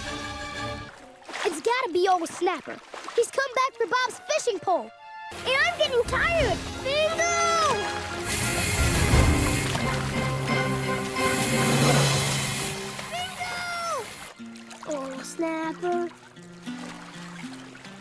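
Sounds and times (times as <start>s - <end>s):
cartoon water splashing: 5.3s - 18.0s.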